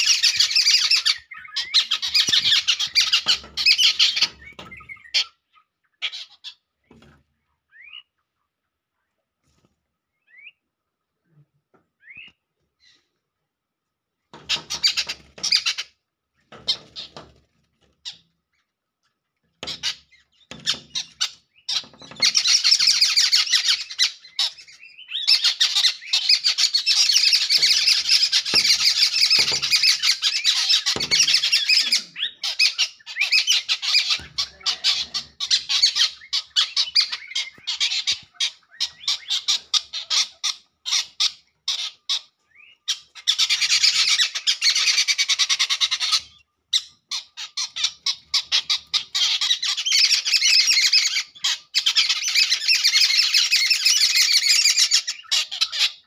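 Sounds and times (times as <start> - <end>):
small birds chirping: 0.0 - 56.0.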